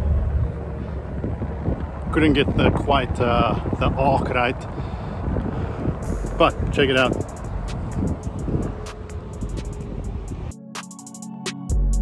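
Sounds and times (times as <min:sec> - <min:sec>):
wind buffeting microphone: 0:00.0 - 0:10.5.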